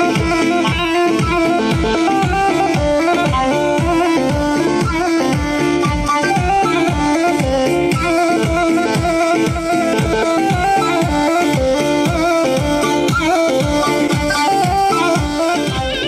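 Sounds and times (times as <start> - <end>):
electronic keyboard folk melody: 0.0 - 16.0.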